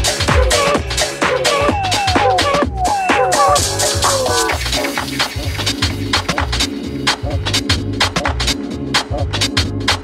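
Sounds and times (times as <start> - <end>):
hi-hats: 0.0 - 10.0
house music: 0.0 - 10.0.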